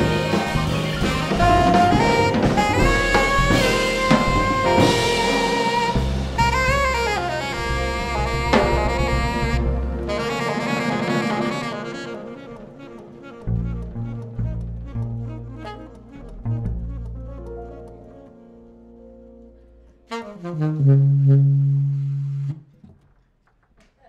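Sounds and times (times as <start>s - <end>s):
saxophones playing: 0.0s - 18.0s, 20.1s - 22.6s
drums: 0.0s - 18.4s
double bass notes: 0.0s - 22.8s.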